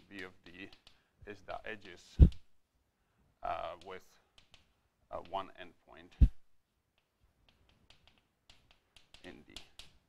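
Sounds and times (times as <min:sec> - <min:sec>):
chalk tapping on blackboard: 0:07.0 - 0:10.0.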